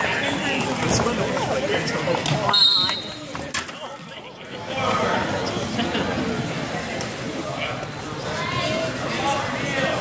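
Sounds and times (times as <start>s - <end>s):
spectators' raised voices: 0.0s - 10.0s.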